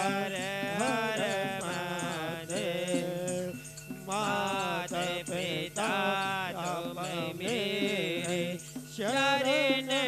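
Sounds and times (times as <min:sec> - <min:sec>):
devotional singing: 0:00.0 - 0:10.0.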